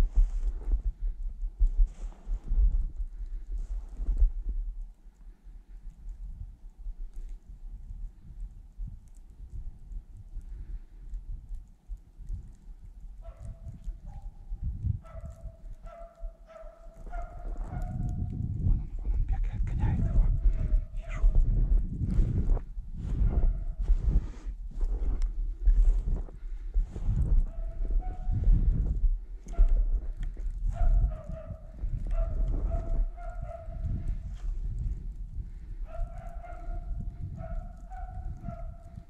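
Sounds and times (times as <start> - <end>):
low microphone rumble: 0.0 - 39.0
dogs barking: 13.2 - 14.4, 15.0 - 18.4, 27.5 - 28.4, 30.7 - 34.4, 35.8 - 39.0.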